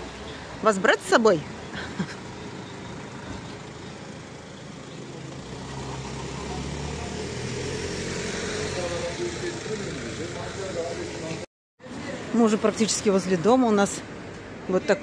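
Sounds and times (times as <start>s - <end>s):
vehicle engine humming: 0.0s - 15.0s.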